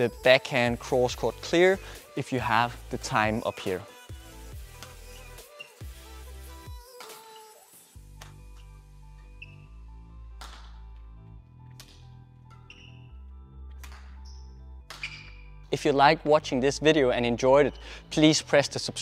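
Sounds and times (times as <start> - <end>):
background music with bass line: 0.0 - 19.0
badminton racket hitting shuttlecock: 13.8 - 15.4.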